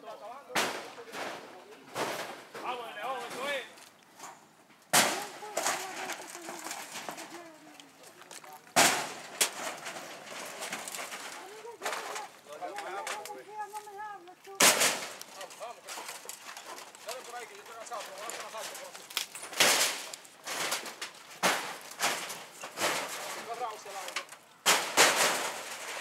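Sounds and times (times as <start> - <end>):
men talking: 0.0 - 3.8, 5.1 - 9.2, 10.4 - 19.1, 23.1 - 24.4
shack crashing down bangs: 8.8 - 10.1, 14.6 - 15.2, 24.6 - 26.0.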